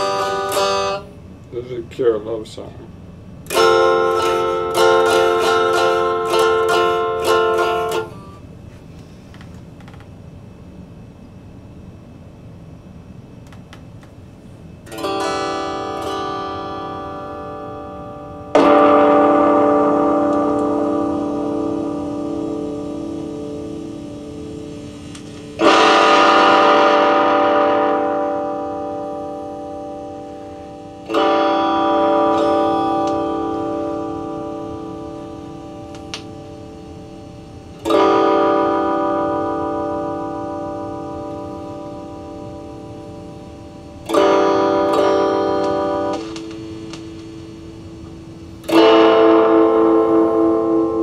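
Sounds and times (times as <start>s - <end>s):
electric guitar chord ringing: 0.0s - 8.5s, 14.8s - 51.0s.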